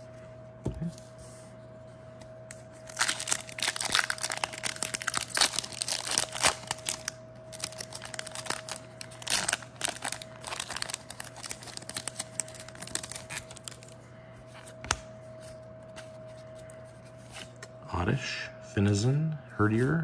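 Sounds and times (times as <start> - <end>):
foil wrapper crinkling and tearing: 2.8 - 14.0.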